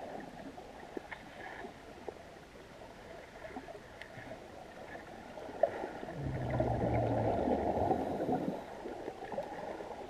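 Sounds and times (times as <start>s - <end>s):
underwater bubbling: 0.0s - 10.0s
faint gurgling: 5.7s - 9.9s.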